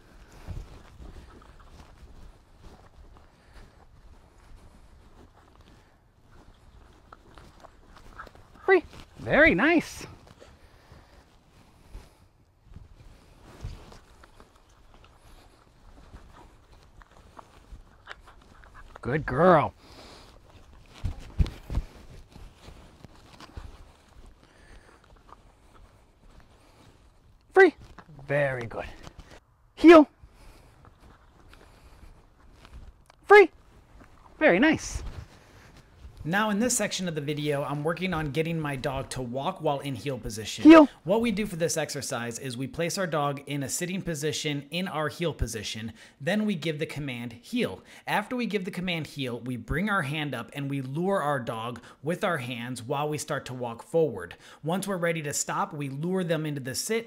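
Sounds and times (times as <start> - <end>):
clothing rustle: 0.0 - 18.8, 19.8 - 29.5, 33.6 - 36.9
footsteps on grass: 0.0 - 19.0, 19.8 - 29.4, 30.2 - 41.1.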